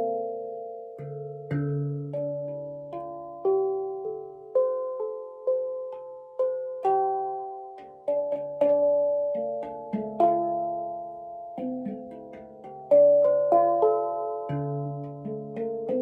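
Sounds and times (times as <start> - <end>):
handpan notes ringing: 0.0 - 16.0.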